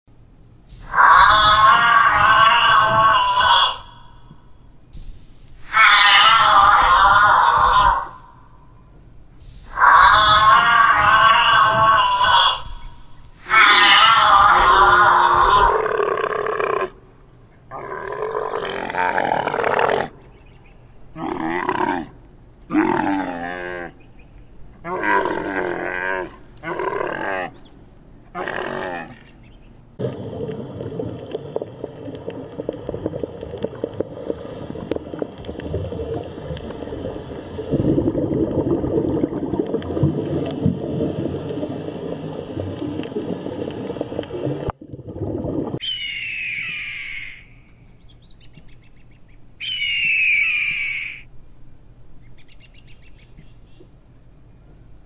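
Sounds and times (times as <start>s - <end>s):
camel groaning and bellowing: 0.8s - 4.0s, 5.6s - 8.2s, 9.7s - 16.9s, 17.7s - 20.2s, 21.2s - 24.0s, 24.8s - 27.6s, 28.3s - 29.4s.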